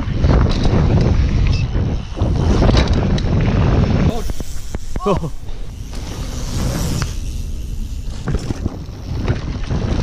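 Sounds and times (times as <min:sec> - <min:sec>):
bike clicks and rattles: 0:00.0 - 0:10.0
mountain bike rolling over dirt: 0:00.0 - 0:10.0
wind buffeting microphone: 0:00.0 - 0:10.0.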